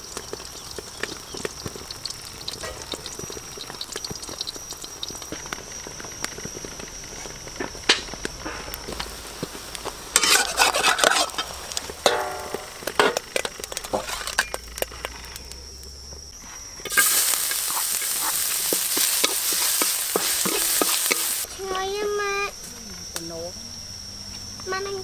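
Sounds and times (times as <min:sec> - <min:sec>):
hot oil sizzling: 0:00.0 - 0:22.5
spatula scraping and tapping wok: 0:08.4 - 0:15.4, 0:16.8 - 0:21.5.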